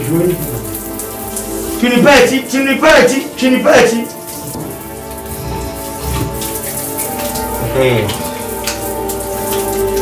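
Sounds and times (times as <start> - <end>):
music with held chords: 0.0 - 10.0
steady rain: 0.0 - 10.0.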